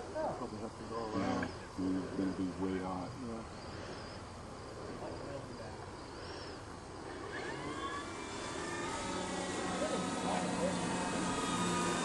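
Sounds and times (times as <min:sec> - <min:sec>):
model plane electric motors whining: 0:00.2 - 0:03.0, 0:06.1 - 0:12.0.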